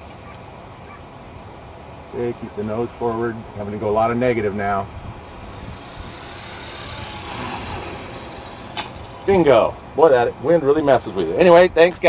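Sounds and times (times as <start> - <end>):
helicopter rotor whooshing: 0.0 - 12.0
faint high whine: 2.0 - 12.0
wind noise: 3.4 - 10.5
sharp click of touchdown: 8.6 - 9.0.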